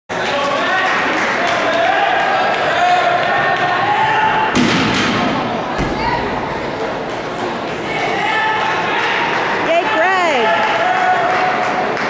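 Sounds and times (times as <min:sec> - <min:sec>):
echoing crowd chatter: 0:00.1 - 0:12.0
sharp thud on springboard: 0:04.6 - 0:06.9
deep thud landing on mat: 0:05.7 - 0:06.6.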